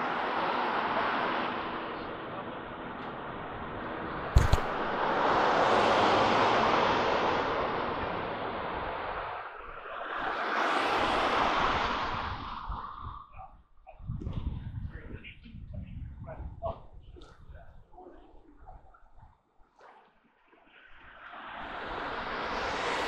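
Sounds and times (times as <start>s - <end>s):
vehicles passing on street: 0.0s - 13.2s, 21.0s - 23.0s
sharp click: 4.4s - 4.8s.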